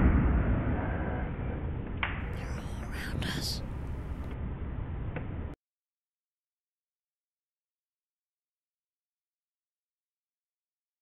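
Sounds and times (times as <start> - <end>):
steady low rumbling noise: 0.0 - 5.6
person whispering: 2.3 - 3.9.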